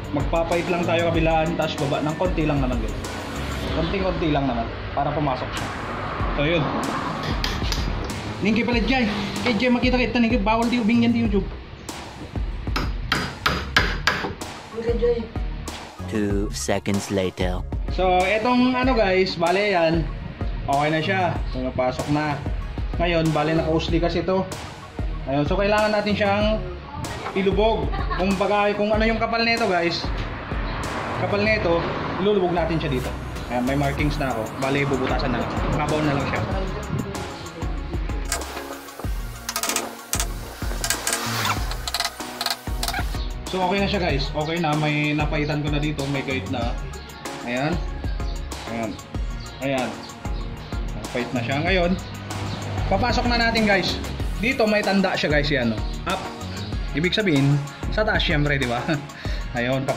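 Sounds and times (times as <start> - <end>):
background music with bass: 0.0 - 59.9
hammer tapping chisel handle: 12.8 - 14.4.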